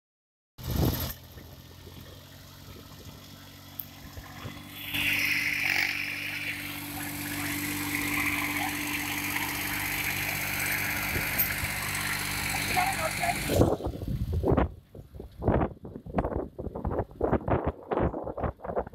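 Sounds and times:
tractor diesel engine running: 0.6 - 18.7.

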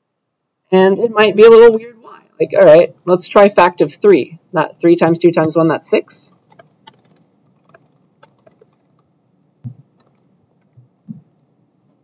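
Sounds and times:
keyboard typing: 5.4 - 12.0.

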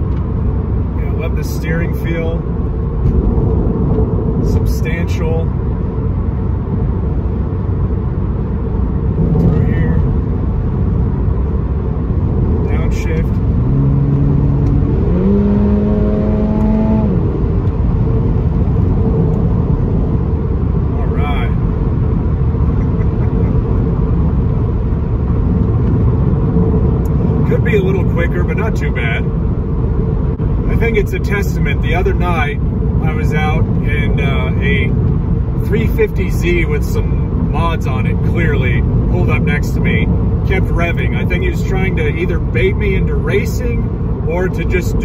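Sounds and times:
car engine: 0.0 - 45.0.

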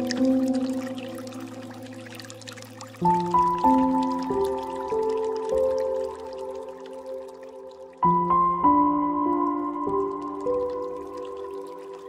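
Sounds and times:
water trickling and dripping: 0.0 - 12.0.

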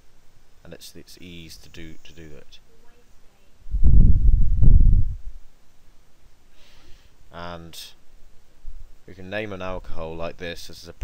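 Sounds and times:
low rumble on microphone: 3.6 - 5.4.

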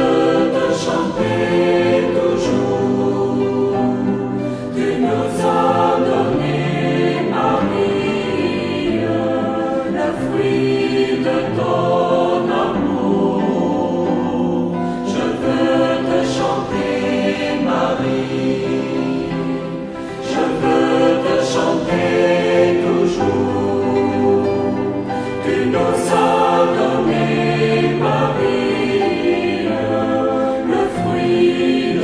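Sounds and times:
choir singing a hymn: 0.0 - 32.0.

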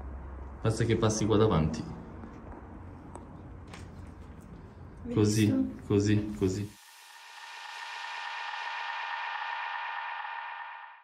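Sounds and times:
hiss: 6.5 - 11.0
drone of high tones: 6.8 - 11.0.

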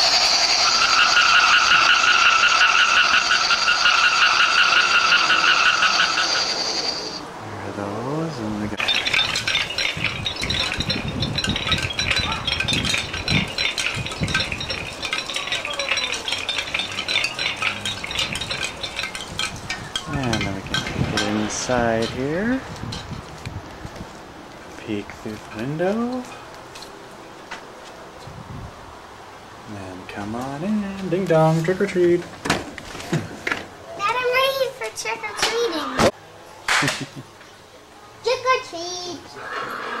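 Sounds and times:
warbling high electronic tone: 0.0 - 7.2.

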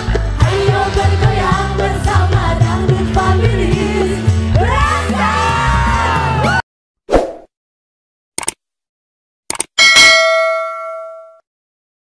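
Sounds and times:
quick mouse clicks: 8.4 - 8.6
bell ding: 9.8 - 11.4.

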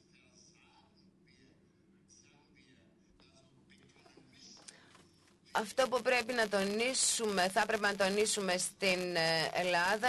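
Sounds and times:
faint low speech: 0.0 - 5.6.

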